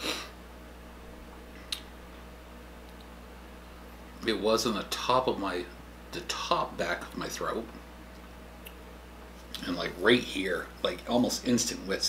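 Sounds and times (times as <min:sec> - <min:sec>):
low room hum: 0:00.0 - 0:12.0
wet mouth click: 0:01.6 - 0:01.9, 0:08.2 - 0:08.8.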